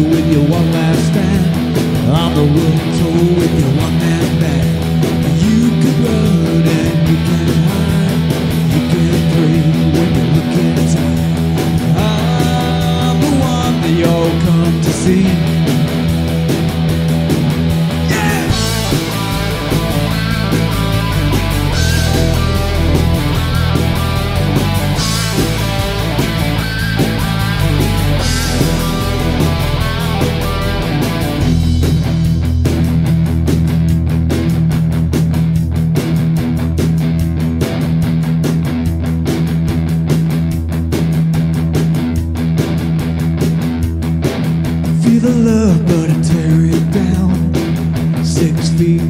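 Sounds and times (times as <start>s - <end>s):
bass guitar: 0.0s - 49.0s
drums and cymbal crashes: 0.0s - 49.0s
electric guitars: 0.0s - 49.0s.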